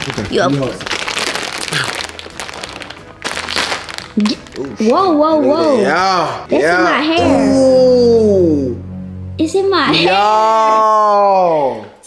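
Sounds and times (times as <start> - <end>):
bag bursting open: 0.0 - 4.8
plastic bag crinkling: 0.0 - 5.5.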